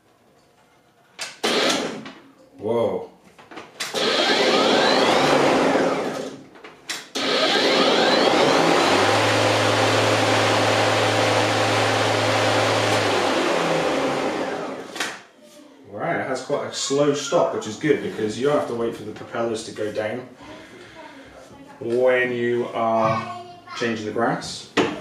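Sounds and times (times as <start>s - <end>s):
lawn mower motor spinning: 3.9s - 6.4s, 7.2s - 14.9s.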